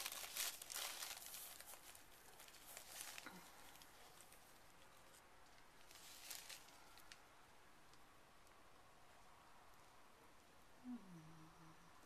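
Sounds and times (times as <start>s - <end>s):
faint rustling of hands: 0.0s - 7.3s.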